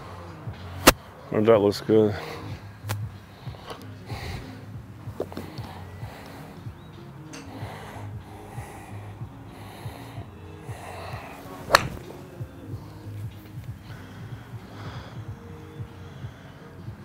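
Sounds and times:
background music: 0.0s - 17.0s
golf club striking ball: 0.8s - 1.0s, 7.2s - 7.6s, 10.7s - 13.8s.

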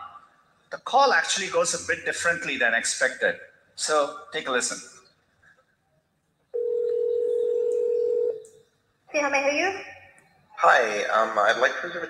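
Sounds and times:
telephone ringback tone: 6.6s - 8.4s.

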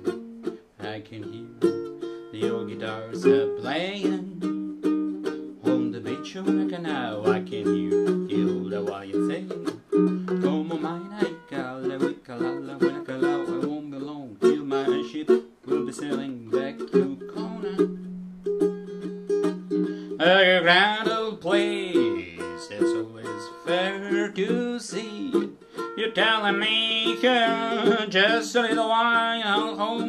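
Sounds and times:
ukulele strumming: 0.0s - 30.0s.

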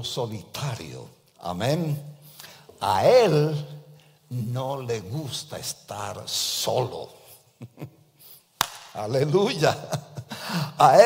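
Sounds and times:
person speaking: 0.0s - 7.9s, 8.9s - 11.0s.

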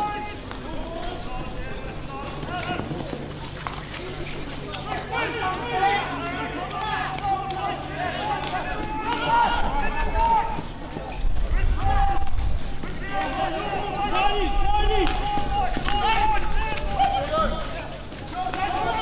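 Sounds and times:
players shouting: 0.0s - 19.0s.

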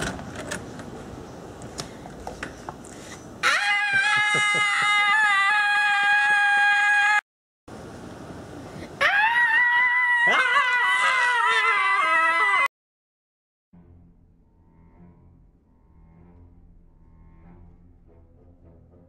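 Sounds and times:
high dog-like howls: 3.4s - 7.2s, 9.0s - 12.7s.

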